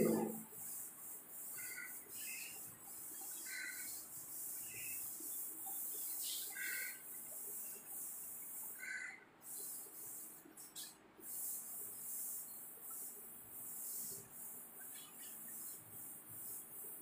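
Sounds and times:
duster rubbing on blackboard: 0.0s - 17.0s
small bird chirping: 5.7s - 7.0s.

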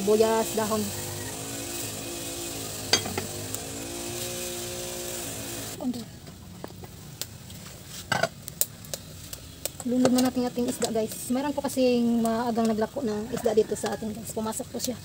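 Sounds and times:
wood fire hissing: 0.0s - 15.0s
metal lid clanking on pot: 2.9s - 3.3s.

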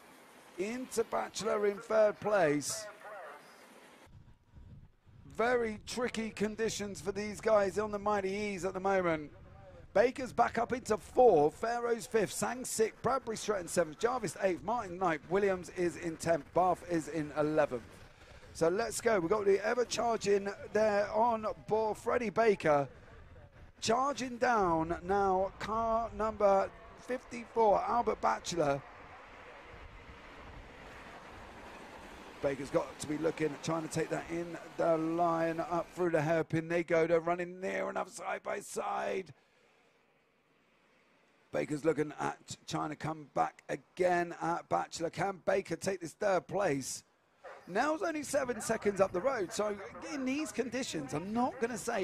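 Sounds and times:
wind rumble on microphone: 4.1s - 6.0s, 9.1s - 10.0s, 22.9s - 23.8s
person speaking: 47.6s - 52.0s.

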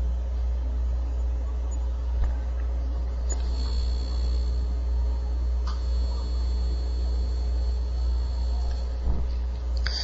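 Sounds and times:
faint high whine: 0.0s - 10.0s
low electrical hum: 0.0s - 10.0s.

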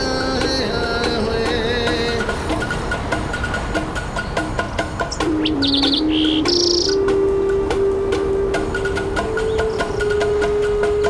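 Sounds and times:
high bird chirps: 2.0s - 7.2s, 8.8s - 11.0s
flute playing slow melody: 5.2s - 11.0s.

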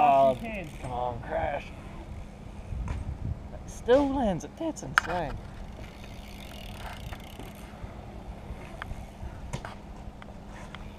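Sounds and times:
bike tyres rolling on concrete: 0.0s - 3.2s, 3.9s - 10.9s
steady low hum: 0.0s - 10.9s.

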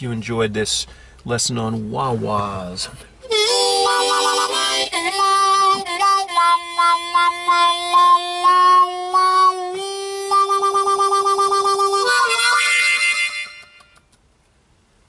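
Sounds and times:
blues harmonica: 3.2s - 14.0s.

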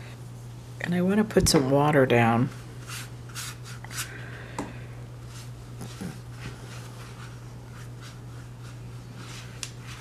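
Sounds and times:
brush strokes on paper: 5.2s - 10.0s.

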